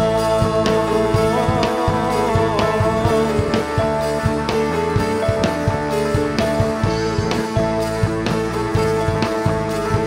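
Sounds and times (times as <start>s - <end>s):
man and woman singing: 0.0s - 4.0s
drum kit beat: 0.0s - 10.0s
guitars: 0.0s - 10.0s.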